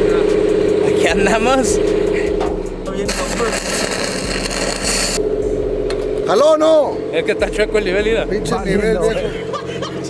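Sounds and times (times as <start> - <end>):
engine hum: 0.0 - 10.0
cutting torch hissing: 3.1 - 5.2.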